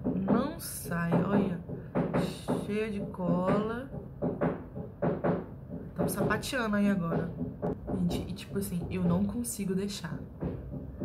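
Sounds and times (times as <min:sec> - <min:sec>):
construction knocks and bangs: 0:00.0 - 0:11.0.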